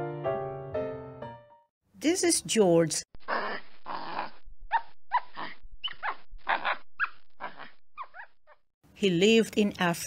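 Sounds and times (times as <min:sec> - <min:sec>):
monkey calls: 0:03.3 - 0:08.6.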